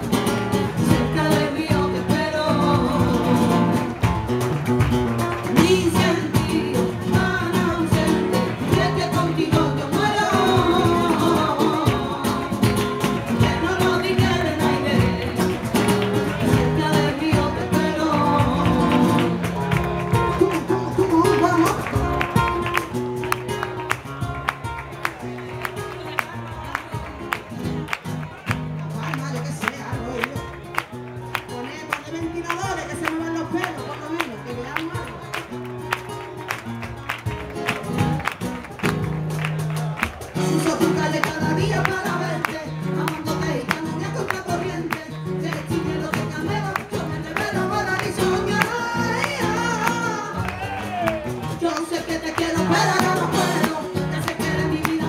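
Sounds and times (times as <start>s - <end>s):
percussion beat: 0.0s - 55.0s
strummed guitar: 0.0s - 55.0s
person singing: 0.7s - 3.8s, 5.5s - 22.8s, 40.2s - 55.0s.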